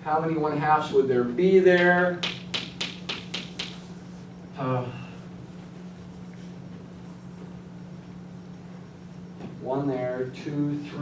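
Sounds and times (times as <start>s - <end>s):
steady low hum: 0.0s - 11.0s
chalk tapping on blackboard: 1.8s - 4.0s.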